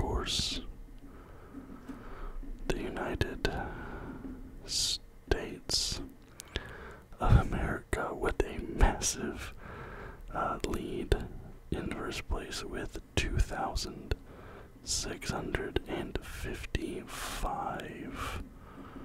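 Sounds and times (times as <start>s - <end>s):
man whispering: 0.0s - 0.8s, 2.6s - 6.1s, 7.1s - 9.6s, 10.2s - 18.5s.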